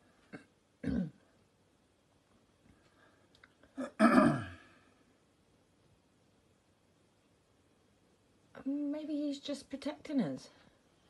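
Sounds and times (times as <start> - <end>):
person clearing throat: 0.3 - 1.2, 3.8 - 4.8.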